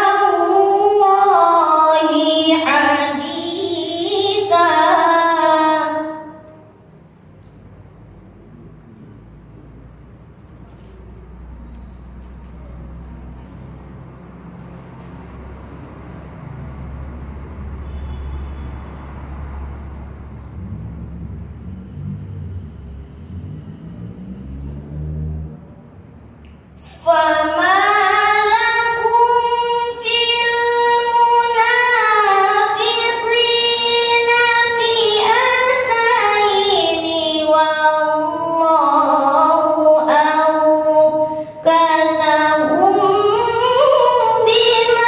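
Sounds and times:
woman reciting melodically: 0.0 - 6.9, 26.8 - 45.0
low rumbling room noise: 0.0 - 45.0.

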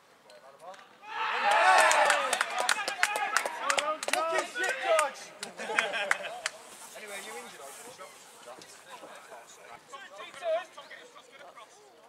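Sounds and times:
players shouting and cheering: 1.0 - 6.5
hand claps: 1.8 - 6.6.

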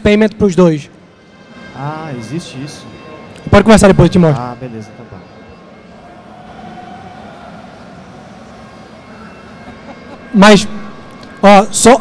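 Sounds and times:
low rumble of event hall: 0.0 - 12.0.

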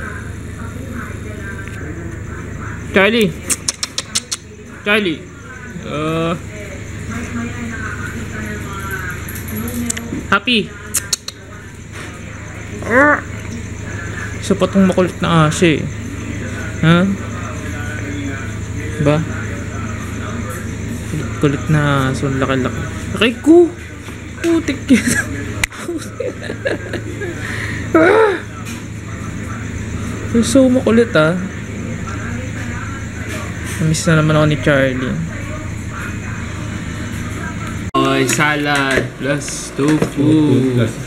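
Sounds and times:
low background hum: 0.0 - 41.0.

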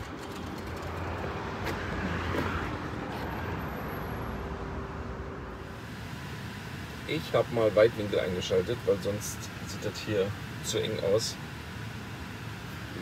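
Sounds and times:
road traffic rumble: 0.0 - 13.0
faint steady hum: 5.3 - 13.0.

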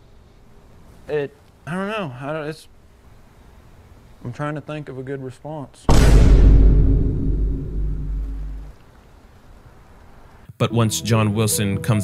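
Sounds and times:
deep boom rumble: 5.9 - 8.7.

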